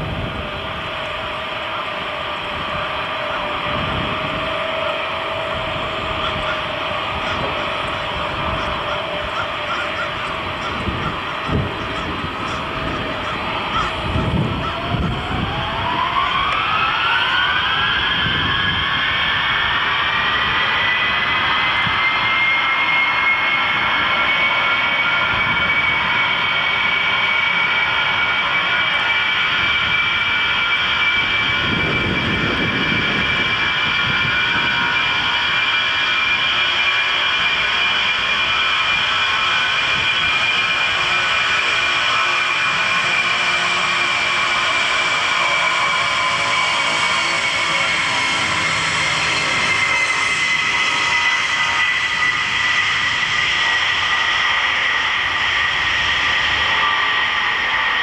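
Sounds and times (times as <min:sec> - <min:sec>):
jet engines whining: 0:00.0 - 0:58.0.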